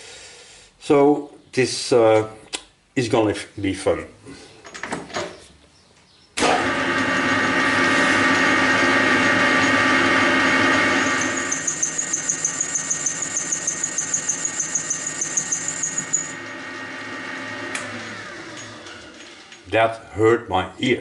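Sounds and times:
pulsing high-pitched squeal: 7.9 - 16.5
lathe tool chattering on steel: 10.7 - 16.5.

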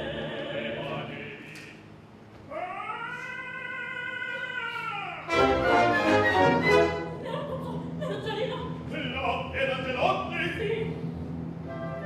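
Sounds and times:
orchestra chord: 5.3 - 7.2.

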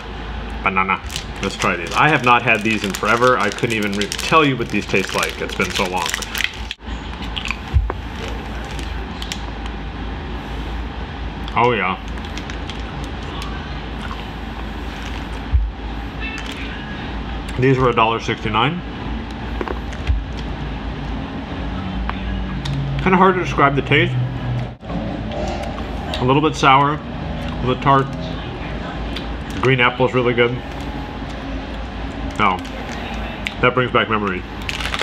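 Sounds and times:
low rumbling background noise: 0.0 - 35.0
plastic wrapper crinkling: 1.0 - 9.4, 12.0 - 13.6, 16.3 - 16.7, 34.3 - 35.0
crunching and chewing candy: 1.0 - 9.6, 11.4 - 15.6, 34.2 - 35.0.

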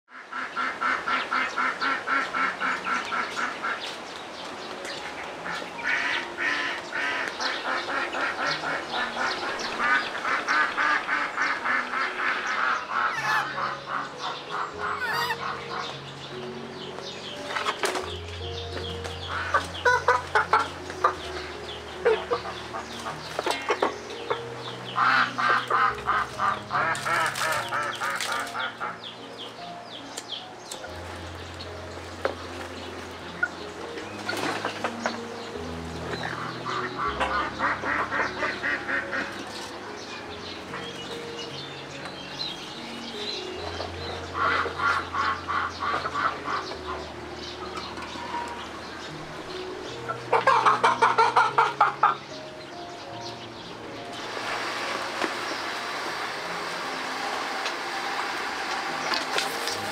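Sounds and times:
background music: 0.1 - 59.9
birds calling: 0.1 - 59.9.

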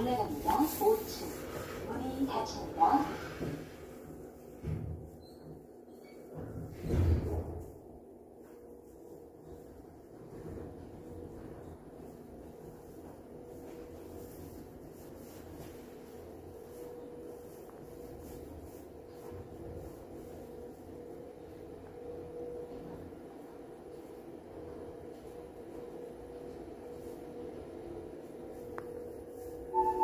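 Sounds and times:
elevator hum and rumble: 0.0 - 30.0.

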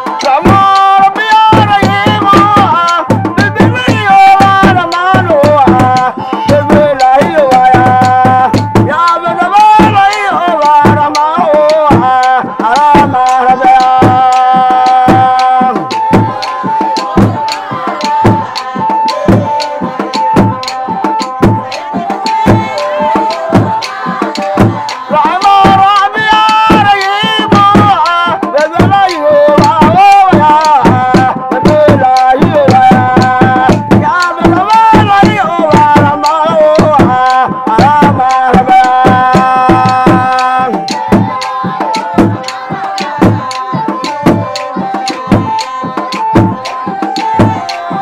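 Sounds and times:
hand drums beating rapidly: 0.0 - 48.0
voices singing: 0.0 - 48.0.

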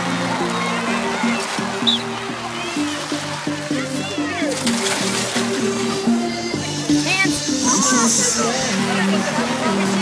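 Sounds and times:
water splashing on wet tarp: 0.0 - 6.0
music with held notes: 0.0 - 10.0
voices: 0.2 - 10.0.

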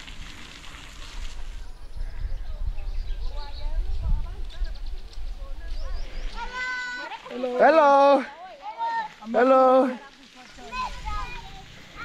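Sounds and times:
wind on microphone: 0.0 - 6.5
children calling out: 6.4 - 7.4.

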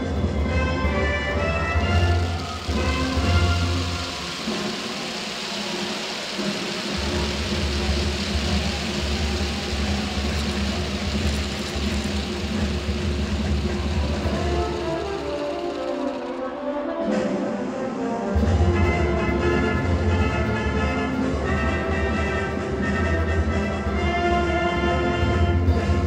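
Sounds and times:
crowd applause and cheering: 0.0 - 16.9.

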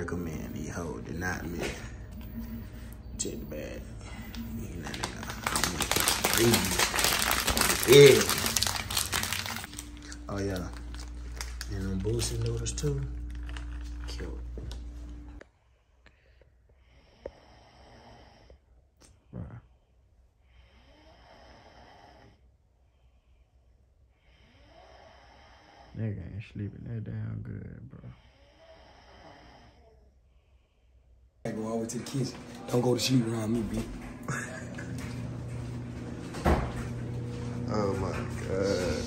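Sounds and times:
chip bag crinkling: 4.3 - 14.8
person snoring: 16.8 - 18.6, 20.6 - 22.4, 24.2 - 26.4, 28.0 - 30.0, 37.7 - 39.0.

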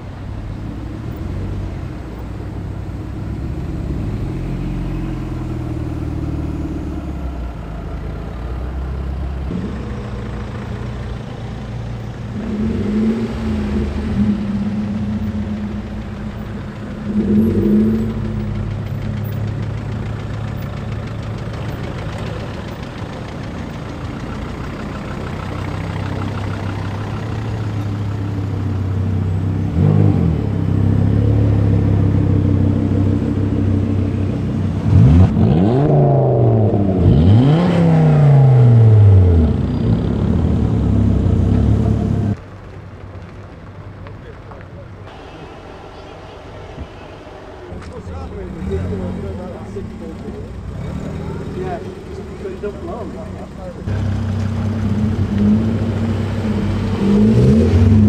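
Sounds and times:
cars driving slowly past: 0.0 - 58.0
engine rev blips: 12.0 - 23.1, 45.1 - 58.0.

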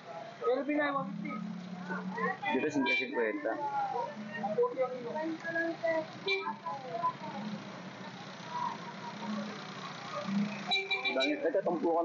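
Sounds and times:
chatter of vendors and shoppers: 0.0 - 12.0.

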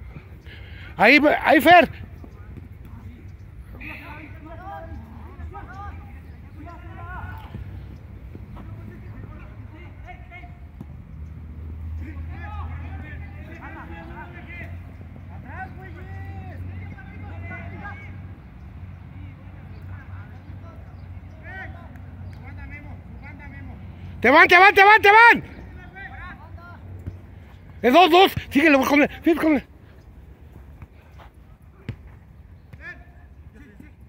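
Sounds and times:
players shouting and calling: 0.0 - 34.0.

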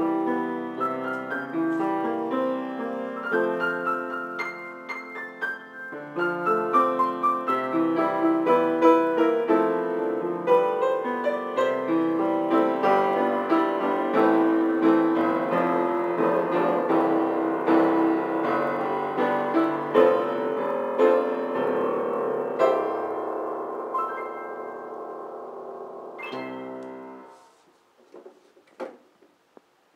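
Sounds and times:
grand piano playing: 0.0 - 27.6.

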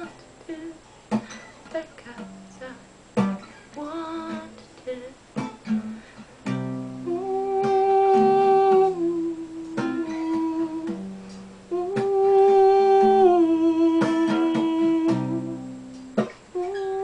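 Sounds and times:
strummed acoustic guitar: 1.1 - 4.7, 5.3 - 17.0
woman humming: 7.0 - 11.1, 11.7 - 17.0.

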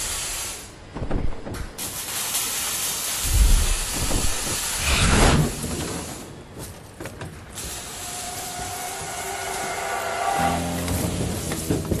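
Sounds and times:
steady hissing noise: 0.0 - 12.0.

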